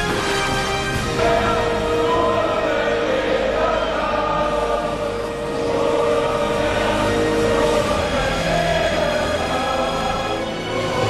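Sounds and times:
choir singing sustained notes: 0.0s - 11.0s.

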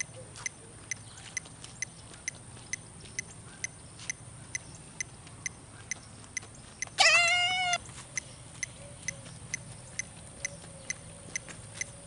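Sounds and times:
loud high-pitched cry: 7.0s - 7.8s
metronome ticking: 8.2s - 12.0s.

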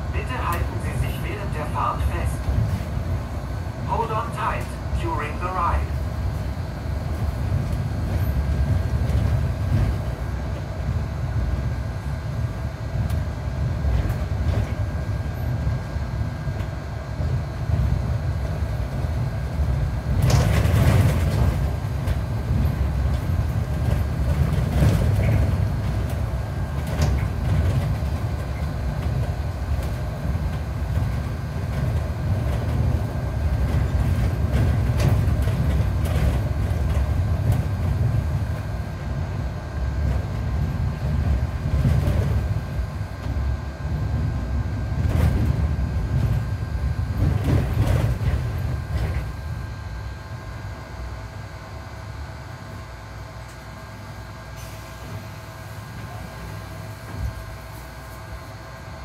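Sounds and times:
bus engine and road rumble: 0.0s - 59.0s
faint steady whine: 0.0s - 59.0s
bus body rattling: 6.2s - 12.4s, 13.1s - 49.9s.

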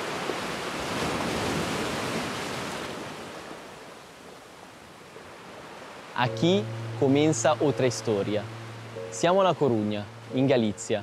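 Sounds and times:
surf washing on rocky shore: 0.0s - 3.8s.

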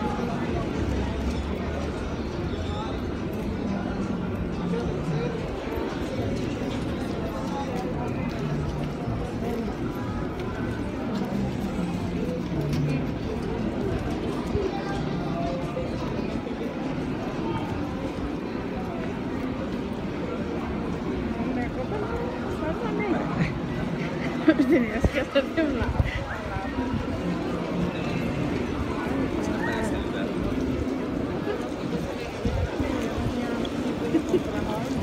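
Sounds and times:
many voices talking: 0.0s - 35.0s.

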